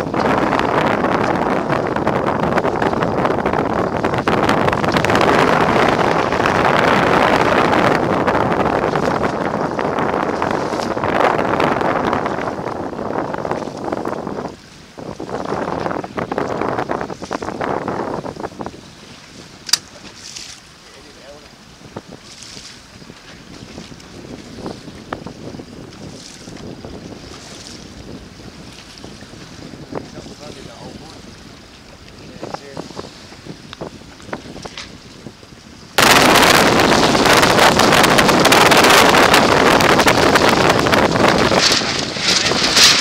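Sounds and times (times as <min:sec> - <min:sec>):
choppy waves: 0:00.0 - 0:43.0
wind buffeting microphone: 0:00.0 - 0:43.0
sharp click: 0:19.6 - 0:19.9.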